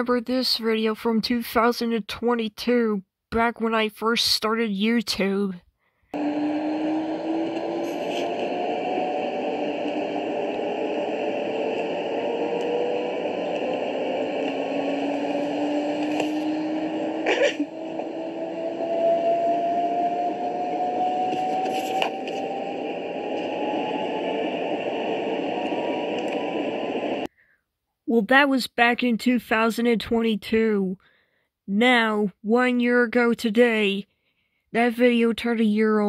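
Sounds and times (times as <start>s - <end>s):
washing machine spinning: 6.2s - 27.3s.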